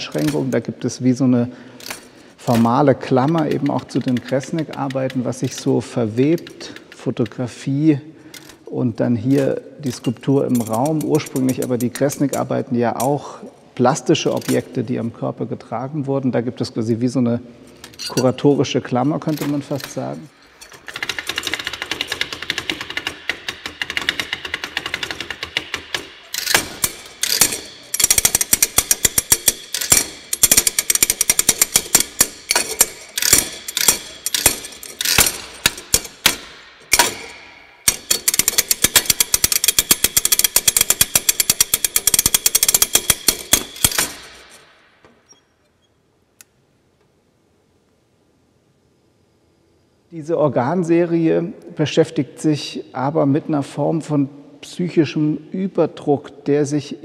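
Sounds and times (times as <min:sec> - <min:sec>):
metallic rattling and scraping percussion: 0:09.3 - 0:13.2, 0:17.7 - 0:44.7.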